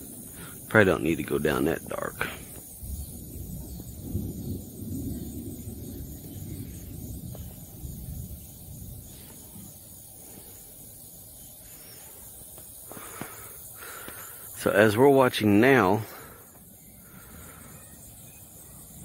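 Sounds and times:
low rumbling noise: 0.0s - 12.2s
steady high hiss: 0.0s - 19.0s.

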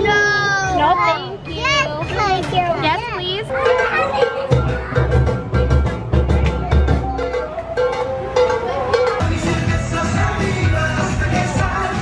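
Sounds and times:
music with steady beat: 3.7s - 12.0s.

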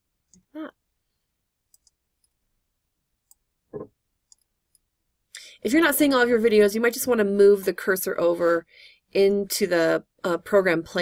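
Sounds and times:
computer mouse clicks: 1.7s - 2.4s.

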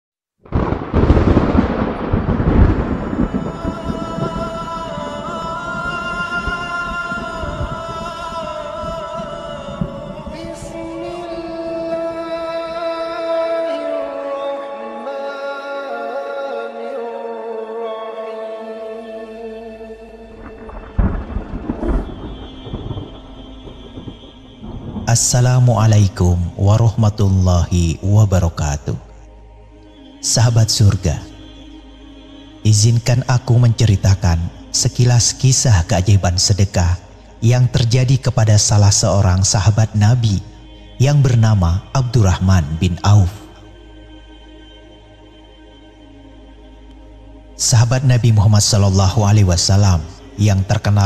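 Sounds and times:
rolling thunder: 0.4s - 11.4s, 20.3s - 27.2s
sustained music tones: 0.5s - 51.0s.

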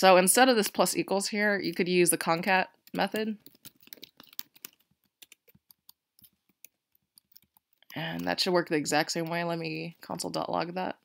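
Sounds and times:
keyboard typing: 1.6s - 9.6s.

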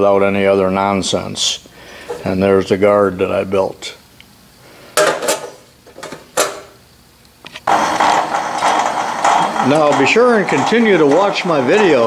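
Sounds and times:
metal shaper machine clattering: 7.6s - 12.0s.

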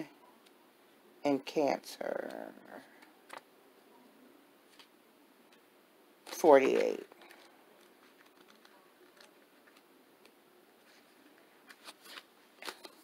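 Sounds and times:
paper cards clicking and rustling: 3.0s - 3.4s, 6.3s - 10.4s, 11.6s - 13.0s.

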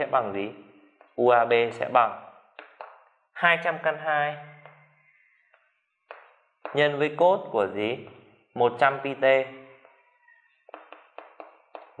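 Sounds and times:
chalk tapping and scraping on blackboard: 2.6s - 3.0s, 5.5s - 7.0s, 10.6s - 12.0s.

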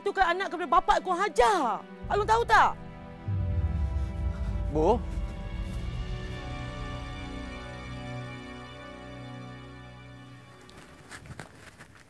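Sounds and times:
soft background music: 0.0s - 11.5s
faint footsteps: 3.2s - 7.5s, 10.5s - 12.0s.

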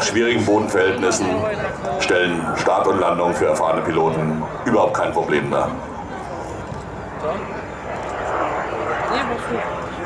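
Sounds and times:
jet flying overhead: 0.0s - 10.0s.

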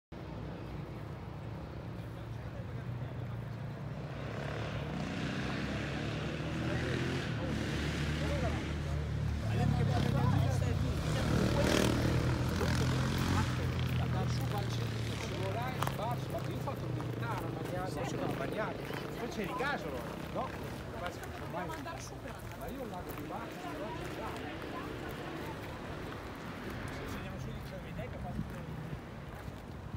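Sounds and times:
low engine drone passing by: 0.4s - 21.2s
faint voices: 1.3s - 29.9s.

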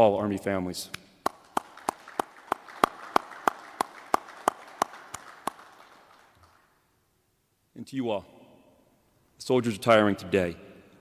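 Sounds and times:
sharp even clapping: 0.9s - 6.7s
soft scattered clapping: 0.9s - 6.8s.

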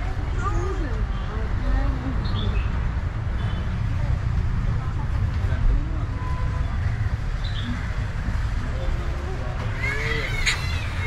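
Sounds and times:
faint voices: 3.4s - 11.0s.

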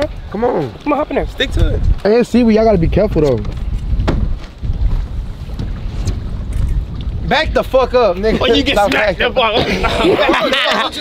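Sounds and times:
wind buffeting microphone: 0.0s - 11.0s
sharp knock: 4.0s - 4.3s.

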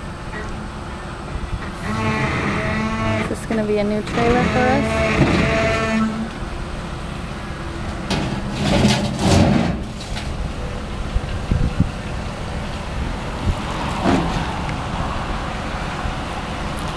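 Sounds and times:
truck engine running: 0.0s - 16.9s.

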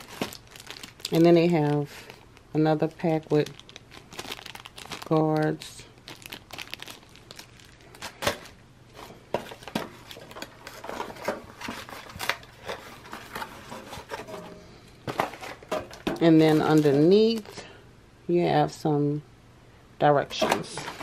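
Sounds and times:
plastic bag crinkling: 0.0s - 14.4s, 15.0s - 17.7s, 20.7s - 21.0s.

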